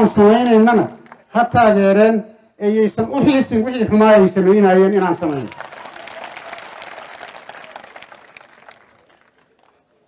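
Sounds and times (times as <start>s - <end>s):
audience clapping: 1.0s - 1.3s, 5.2s - 10.0s.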